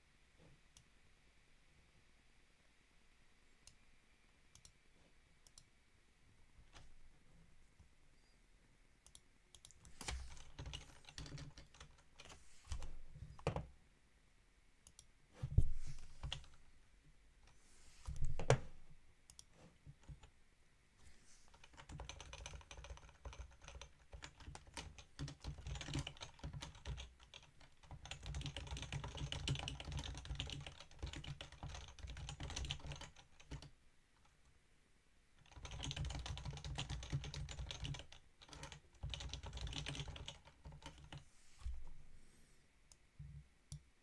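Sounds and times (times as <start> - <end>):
typing on a keyboard: 9.1 - 13.6, 16.2 - 16.5, 21.5 - 33.7, 35.4 - 41.2.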